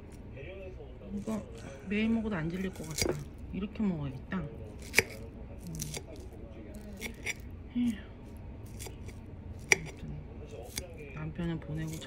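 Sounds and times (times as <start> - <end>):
fork picking through salad: 2.8 - 3.3, 4.7 - 7.4, 8.2 - 11.0.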